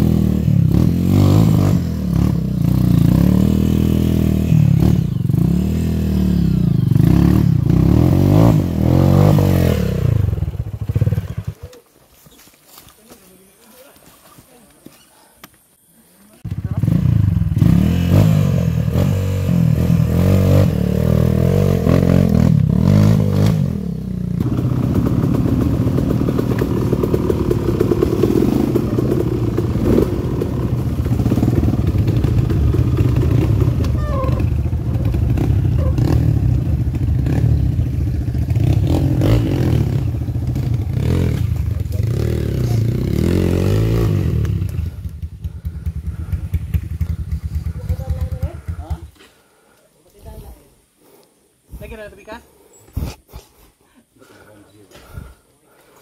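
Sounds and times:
dirt bike engine revving: 0.0s - 11.7s, 16.4s - 49.7s.

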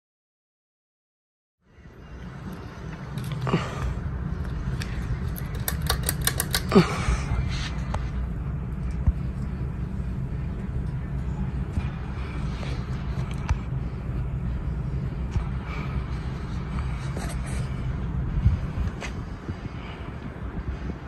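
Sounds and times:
ceiling fan running: 1.7s - 21.0s.

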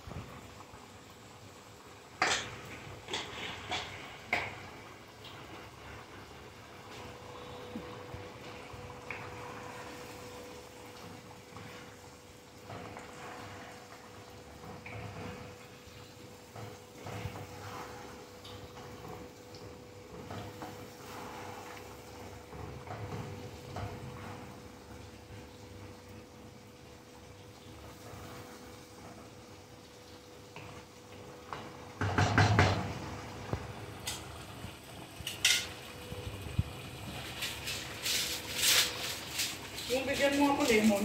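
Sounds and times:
faint steady hum: 0.0s - 32.2s
sauce simmering: 0.0s - 41.0s
wooden spatula scraping pan: 17.0s - 18.3s.

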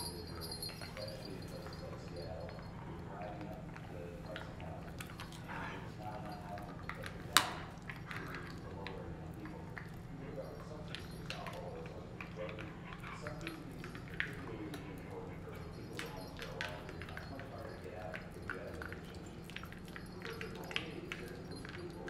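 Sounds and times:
collar tags jingling: 0.0s - 22.0s
dog chewing bone: 0.0s - 22.0s
steady low hum: 0.0s - 22.0s.

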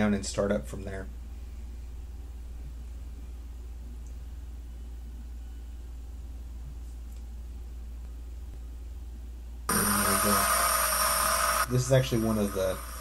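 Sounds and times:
low hum with faint hiss: 0.0s - 10.4s.

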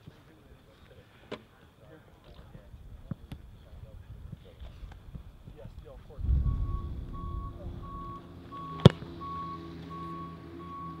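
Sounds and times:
sharp thump: 6.2s - 8.0s
reversing alarm beeping: 6.2s - 11.0s.

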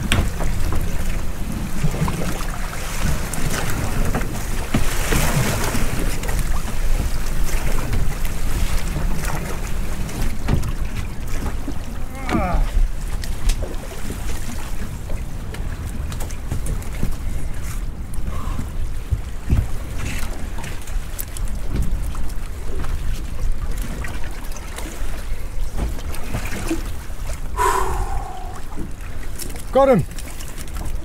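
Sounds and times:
sea water around boat: 0.0s - 31.0s
wind on microphone: 27.4s - 29.3s.

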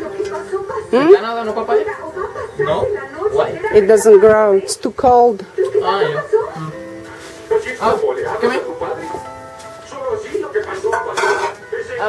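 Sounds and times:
dishes and pots clattering: 10.8s - 11.7s
metal and crockery clatter: 10.8s - 11.7s.

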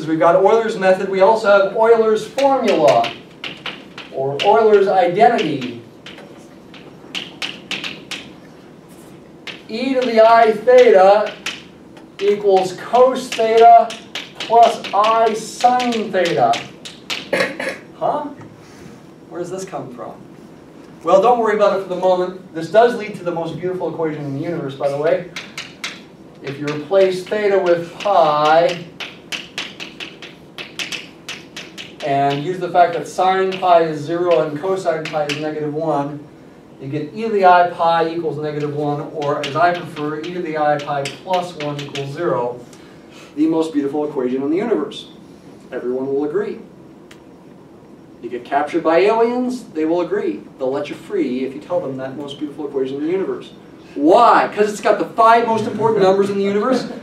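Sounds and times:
chalk tapping on blackboard: 2.4s - 8.4s, 9.4s - 17.4s, 24.9s - 35.6s, 38.5s - 42.2s.

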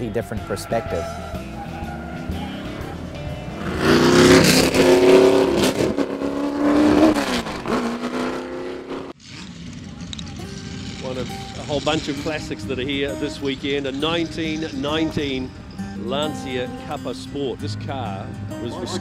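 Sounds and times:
racing car engine passing by: 0.4s - 15.8s.

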